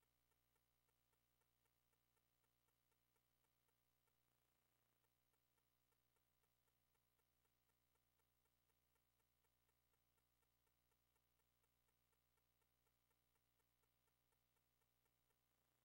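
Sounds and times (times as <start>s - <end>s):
faint regular ticking: 0.0s - 15.8s.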